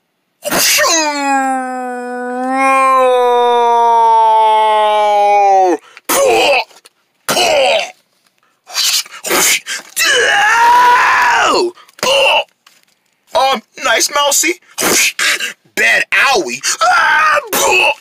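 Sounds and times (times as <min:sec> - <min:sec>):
person crying out: 0:00.5 - 0:06.8, 0:08.7 - 0:12.5, 0:16.6 - 0:18.0.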